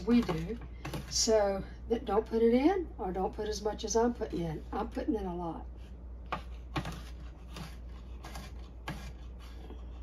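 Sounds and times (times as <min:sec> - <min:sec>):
steady low hum: 0:00.0 - 0:10.0
knife chopping on cutting board: 0:06.3 - 0:09.3.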